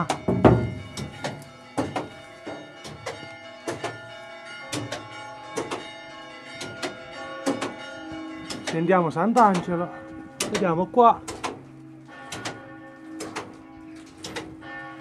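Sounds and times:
church bell ringing: 0.0s - 15.0s.

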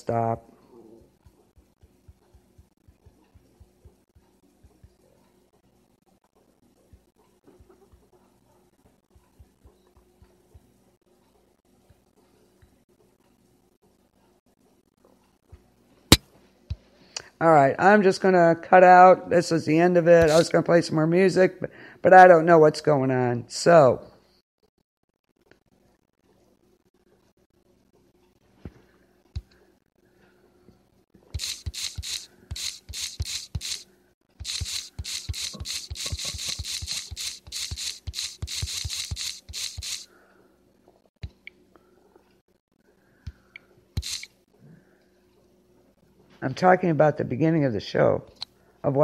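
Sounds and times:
short scratchy noise bursts: 20.2s - 20.5s, 31.4s - 33.8s, 34.4s - 40.1s, 44.0s - 44.3s.

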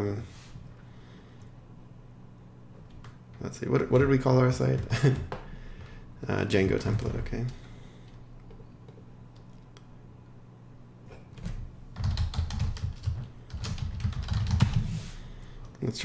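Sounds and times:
computer keyboard typing: 6.6s - 7.6s, 11.4s - 14.9s.

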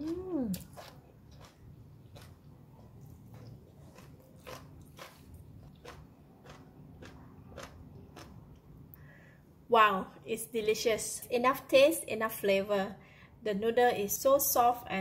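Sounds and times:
person chewing noodles: 0.0s - 8.7s.

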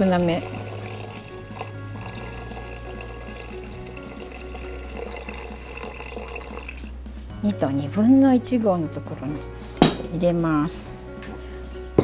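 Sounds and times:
water pouring into pot: 0.0s - 7.0s
background music: 0.0s - 12.0s.

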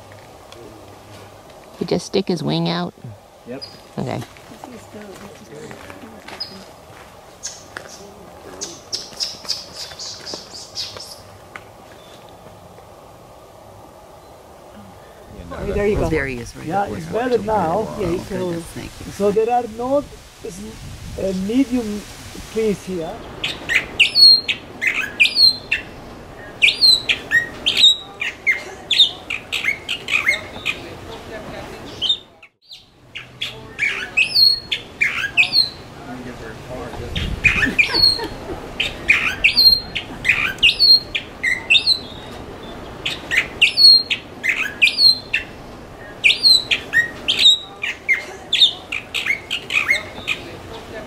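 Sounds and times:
mockingbird singing: 23.2s - 31.2s, 31.9s - 35.9s, 37.1s - 50.9s.

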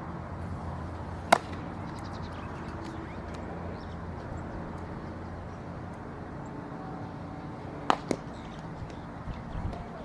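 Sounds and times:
outdoor background noise: 0.0s - 10.0s
ball smacking into leather glove: 1.3s - 2.0s, 7.9s - 8.3s.

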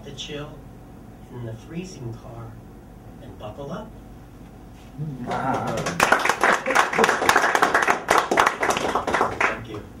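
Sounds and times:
small audience clapping: 5.2s - 10.0s.

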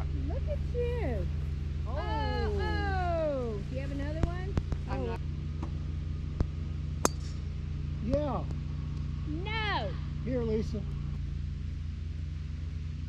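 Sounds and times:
people talking softly: 0.0s - 1.3s, 1.9s - 5.2s
steady low hum: 0.0s - 13.0s.

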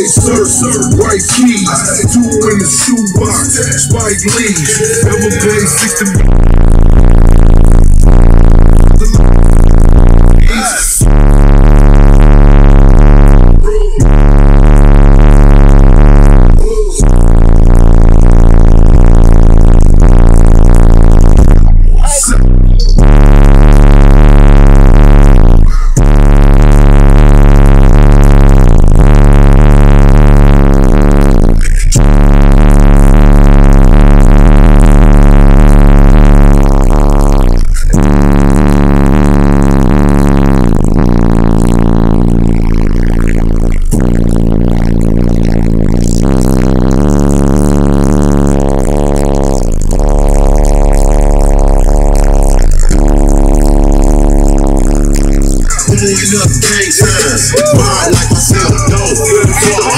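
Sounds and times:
bass-heavy electronic music: 0.0s - 59.9s.

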